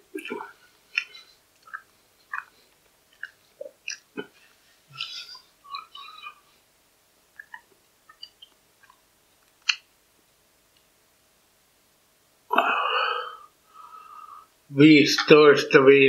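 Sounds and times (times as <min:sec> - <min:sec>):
person chewing salad: 0:00.2 - 0:06.5, 0:07.4 - 0:09.0.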